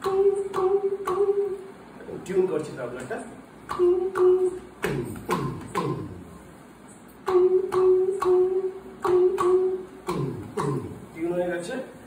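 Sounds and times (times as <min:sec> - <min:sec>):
man singing unaccompanied: 0:00.0 - 0:02.8, 0:03.6 - 0:06.4, 0:07.2 - 0:11.2.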